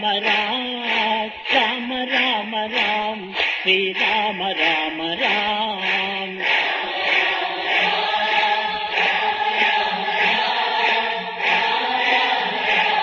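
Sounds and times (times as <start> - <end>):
group chanting devotional song: 0.0 - 13.0
steady beat: 0.0 - 13.0.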